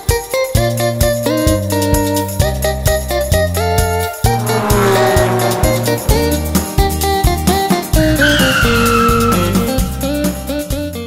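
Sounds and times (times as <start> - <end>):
cartoon tyre screech effect: 4.4 - 6.8, 8.0 - 9.9.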